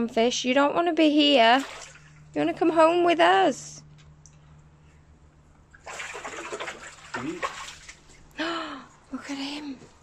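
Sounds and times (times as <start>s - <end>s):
water splashing and sloshing: 1.4s - 2.5s, 5.6s - 8.3s.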